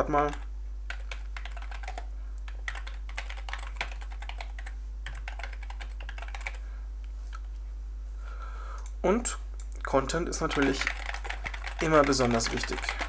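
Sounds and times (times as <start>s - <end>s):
steady low hum: 0.0s - 13.0s
typing on computer keyboard: 0.2s - 6.6s, 10.5s - 13.0s.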